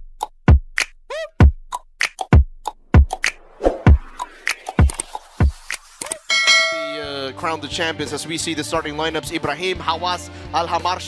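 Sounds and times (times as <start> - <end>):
bright bell-like chime: 6.3 - 7.3.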